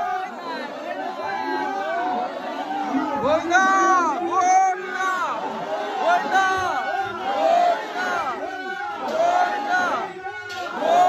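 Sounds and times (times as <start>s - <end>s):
crowd of men shouting: 0.0s - 11.0s.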